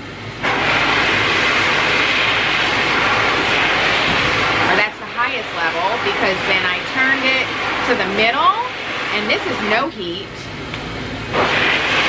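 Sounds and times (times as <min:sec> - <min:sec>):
dog dryer blowing air: 0:00.0 - 0:12.0.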